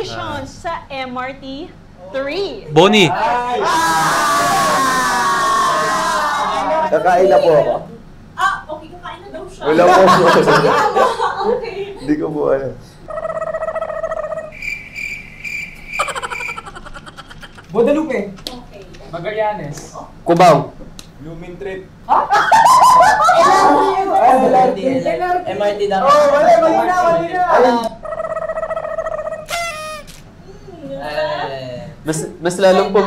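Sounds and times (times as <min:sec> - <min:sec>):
high thin cricket chirp: 0:14.3 - 0:17.6.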